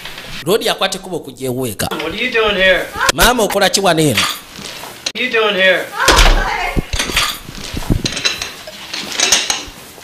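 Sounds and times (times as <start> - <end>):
dishes and cutlery clattering: 4.0 - 4.5, 6.9 - 9.8.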